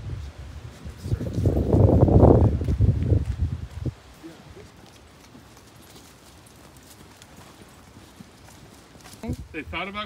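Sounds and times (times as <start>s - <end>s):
footsteps on dry leaves: 1.5s - 9.5s.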